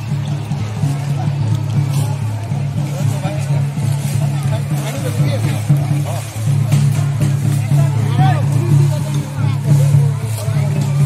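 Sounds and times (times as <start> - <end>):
music: 0.0 - 11.0
people talking: 0.0 - 11.0.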